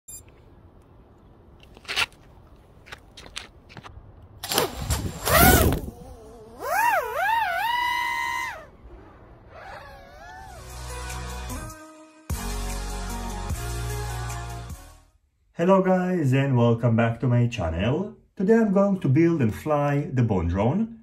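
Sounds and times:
clicks on gravel: 1.6s - 4.6s
drone motors whining: 5.2s - 11.1s.

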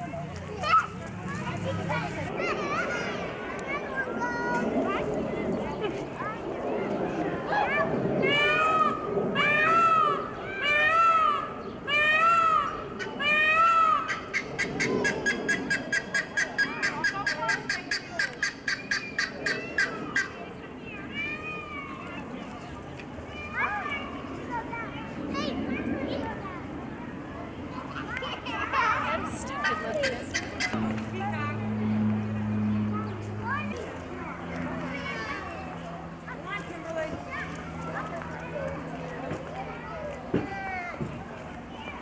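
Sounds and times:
adult voices: 0.0s - 11.8s, 24.4s - 42.0s
children chattering and calling: 0.0s - 42.0s
guineafowl clicking chatter: 14.1s - 20.4s, 29.7s - 30.8s
steady low hum: 29.0s - 40.3s.

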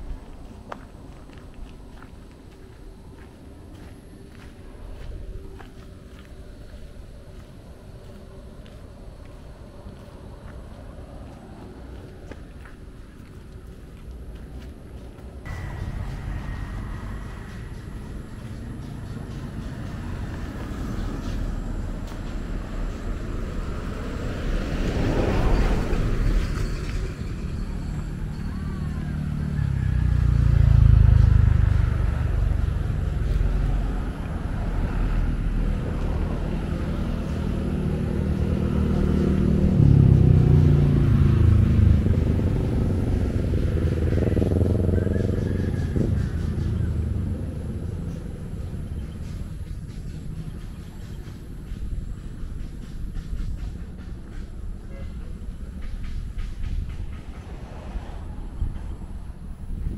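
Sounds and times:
vehicles passing on road: 0.0s - 59.9s.

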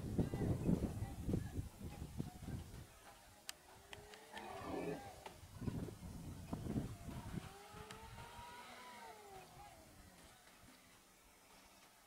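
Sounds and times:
faint engine revving: 3.9s - 5.8s, 6.6s - 10.5s.

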